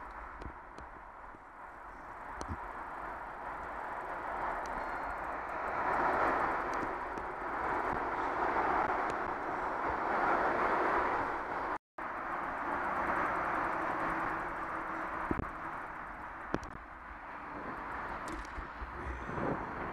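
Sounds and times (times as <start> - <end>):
bicycle tyres rolling on wet path: 0.0 - 19.9.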